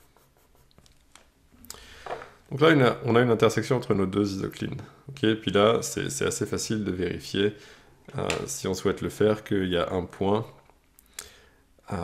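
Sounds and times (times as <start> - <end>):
hand rubbing across paper: 0.0 - 0.9
pencil scratching on paper: 0.0 - 0.9.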